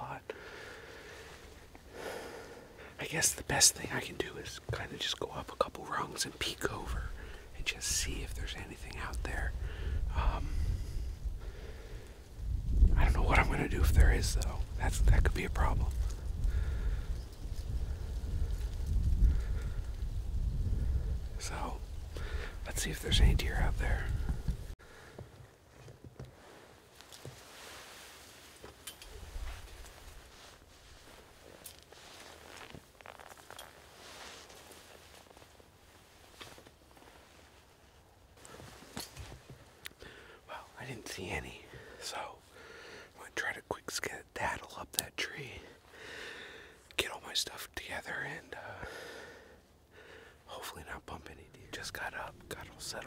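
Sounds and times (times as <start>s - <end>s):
soft breath: 0.3s - 3.0s, 9.6s - 12.3s, 16.1s - 20.0s, 22.1s - 22.7s, 23.8s - 25.6s, 38.4s - 40.7s, 41.7s - 43.2s, 45.7s - 46.9s, 48.6s - 50.5s
wind buffeting microphone: 9.2s - 24.8s
quiet footsteps: 13.2s - 40.6s
clothing and backpack rustling: 24.3s - 39.9s.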